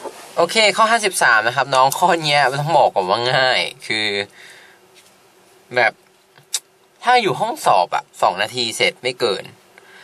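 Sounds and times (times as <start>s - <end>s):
faint steady hum: 0.0s - 10.0s
man speaking: 0.4s - 4.4s, 5.7s - 9.6s.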